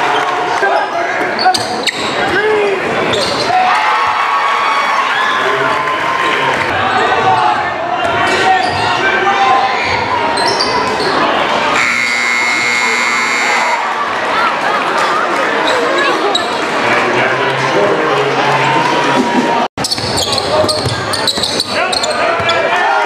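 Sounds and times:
crowd chatter and shouts: 0:00.0 - 0:23.0
scoreboard buzzer: 0:11.8 - 0:13.8.

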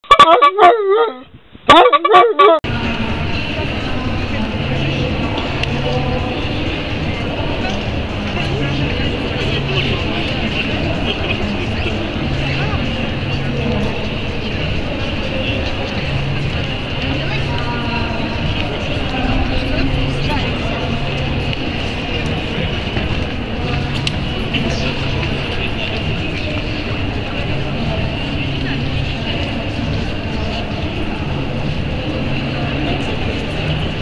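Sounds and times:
crowd babble: 0:00.0 - 0:34.0
continuous low rumble: 0:02.6 - 0:34.0.

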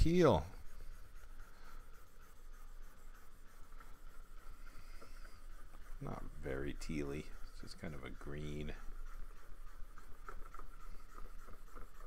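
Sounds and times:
stylus scratching on screen: 0:00.0 - 0:12.0.

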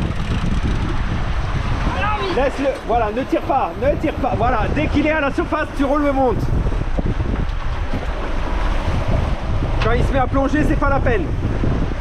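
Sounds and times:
wind buffeting microphone: 0:00.0 - 0:12.0
person speaking: 0:01.9 - 0:06.5.

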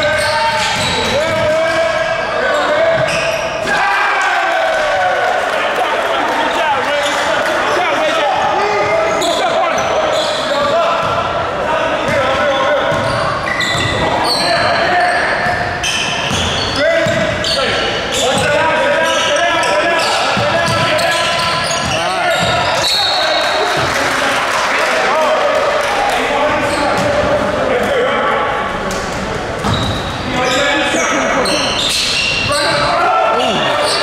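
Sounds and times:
people calling out and talking: 0:00.0 - 0:34.0
basketball bouncing on court: 0:00.5 - 0:01.6, 0:11.0 - 0:11.3, 0:12.9 - 0:14.7, 0:16.2 - 0:17.5, 0:20.3 - 0:22.9, 0:29.6 - 0:30.1
short high squeaks: 0:29.7 - 0:34.0.

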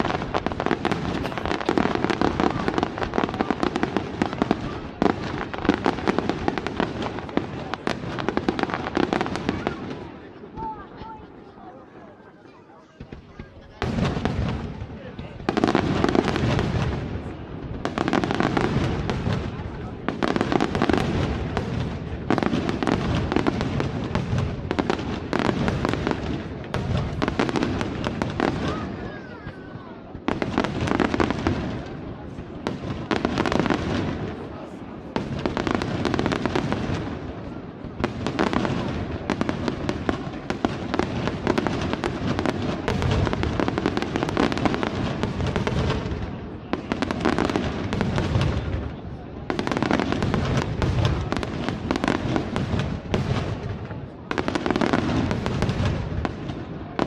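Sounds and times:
fireworks bursting and crackling: 0:00.0 - 0:57.0.

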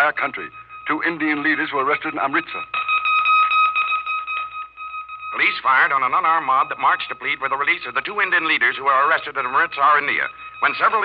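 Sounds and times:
steady high-pitched tone: 0:00.0 - 0:11.0.

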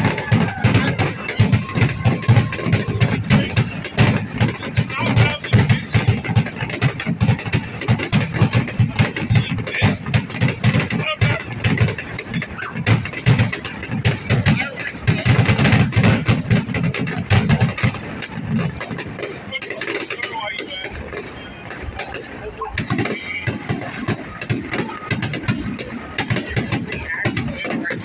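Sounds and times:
firework bursts cracking: 0:00.0 - 0:28.0.

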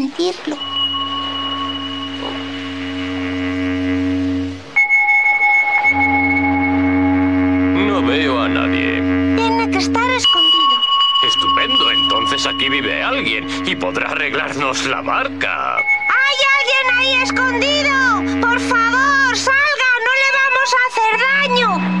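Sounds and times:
held synthesizer chords: 0:00.6 - 0:22.0
wavering voice-like sounds: 0:09.4 - 0:22.0.

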